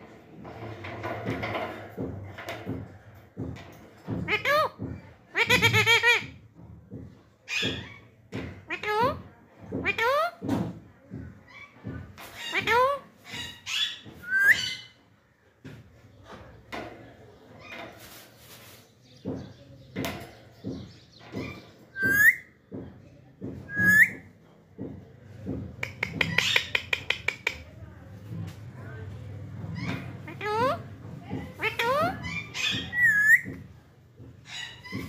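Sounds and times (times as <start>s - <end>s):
parakeets whistled calls: 13.7s - 14.9s, 21.4s - 22.5s, 23.7s - 24.2s, 32.3s - 33.5s.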